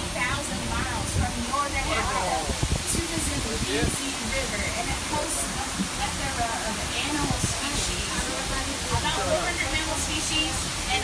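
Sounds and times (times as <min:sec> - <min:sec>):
steady rushing noise: 0:00.0 - 0:11.0
person speaking: 0:01.8 - 0:02.6.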